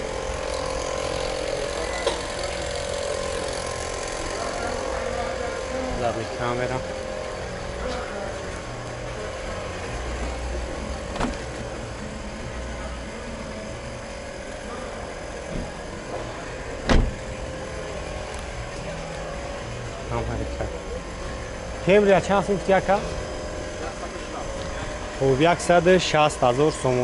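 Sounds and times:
faint voices: 0.0s - 27.0s
car door being shut: 11.1s - 11.5s, 16.8s - 17.3s.

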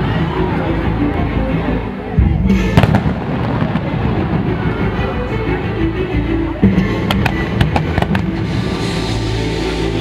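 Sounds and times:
music playing: 0.0s - 10.0s
fireworks booming and banging: 2.5s - 5.1s, 6.6s - 8.8s.

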